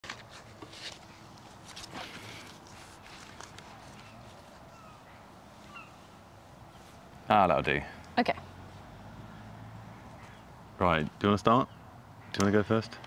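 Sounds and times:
clothing rustle: 0.0 - 7.0.

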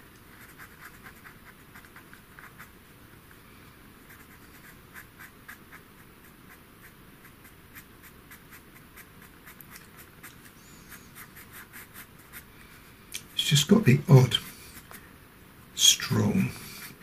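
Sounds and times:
pencil scratching on paper: 0.3 - 2.8, 4.0 - 12.5.

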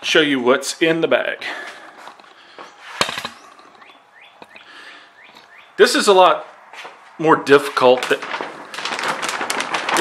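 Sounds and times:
plastic bag rustling and crackling: 7.4 - 10.0.

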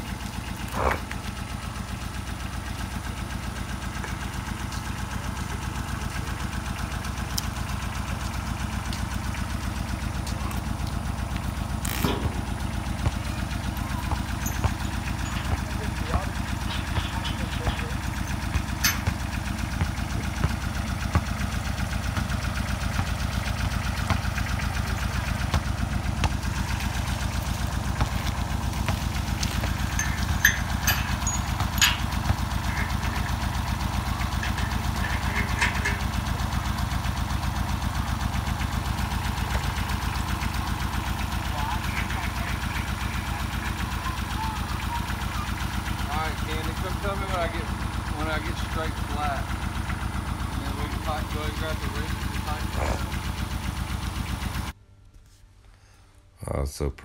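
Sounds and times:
tractor engine idling: 0.0 - 54.8
metallic clinks: 14.2 - 19.2, 29.4 - 33.6.

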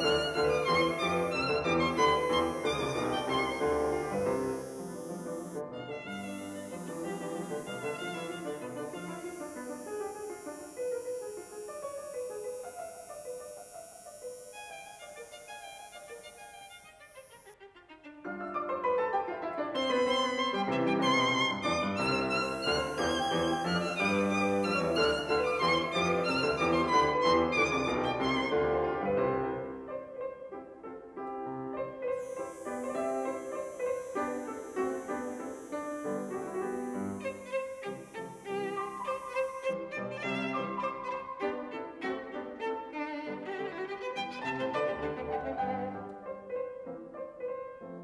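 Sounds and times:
instrumental music led by violin: 0.0 - 29.8, 32.2 - 47.0.

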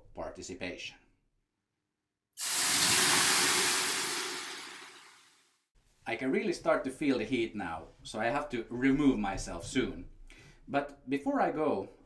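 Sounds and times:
water hissing on hot stones: 2.4 - 5.3.

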